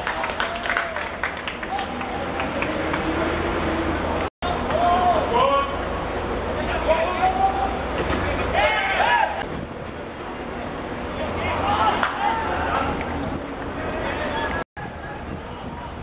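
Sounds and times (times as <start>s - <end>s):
players shouting: 4.4s - 5.8s, 6.6s - 9.4s, 11.2s - 13.0s.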